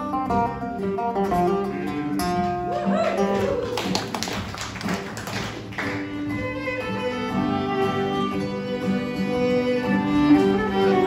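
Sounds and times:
acoustic folk band: 0.0s - 11.0s
percussive strumming: 0.0s - 11.0s.

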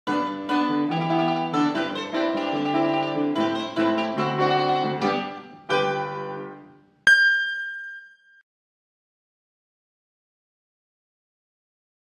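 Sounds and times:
mandolin melody: 0.1s - 6.8s.

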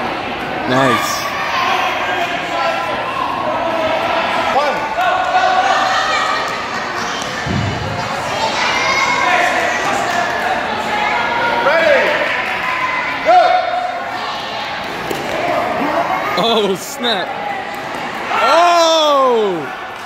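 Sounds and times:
children chattering: 5.5s - 18.4s.

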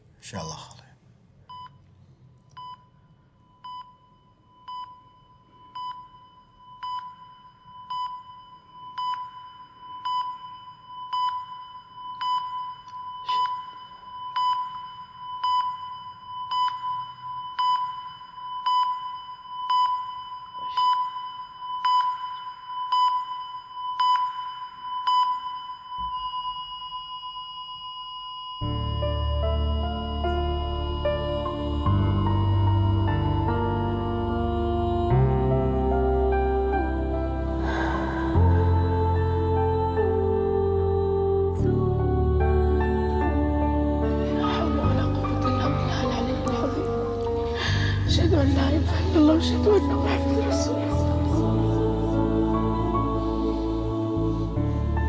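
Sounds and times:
heart monitor continuous tone: 1.4s - 29.0s
heart monitor beeping: 1.4s - 31.2s.

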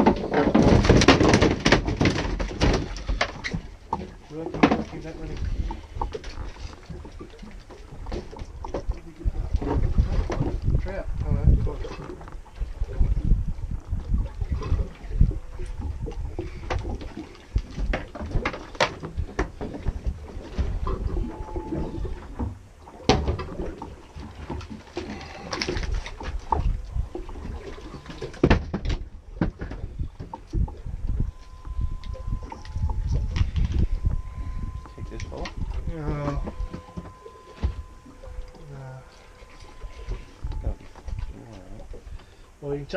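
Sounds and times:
knocks and clatter on deck: 0.0s - 5.0s, 28.3s - 30.4s
water against boat hull: 0.0s - 42.9s
wind rumbling on microphone: 0.0s - 42.9s
faint high tone: 31.1s - 41.8s.

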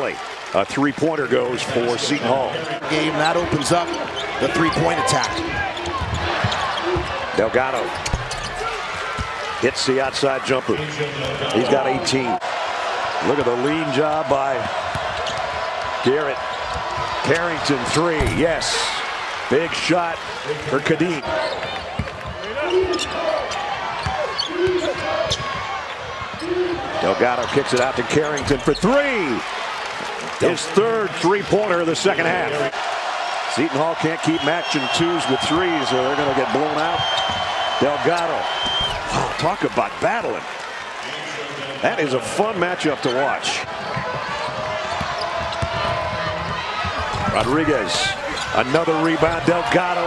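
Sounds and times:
crowd murmur and voices: 0.0s - 50.0s
basketball bouncing on hardwood: 43.8s - 47.5s.

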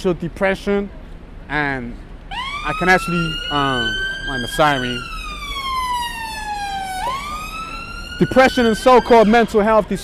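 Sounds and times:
emergency siren wailing: 2.3s - 9.7s.

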